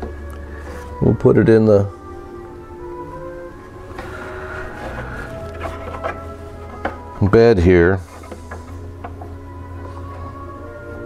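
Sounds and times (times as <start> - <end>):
soft sustained background music: 0.0 - 11.0.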